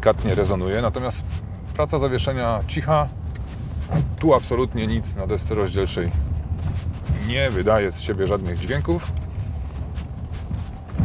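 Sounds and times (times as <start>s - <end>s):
tyre and suspension rumble: 0.0s - 11.0s.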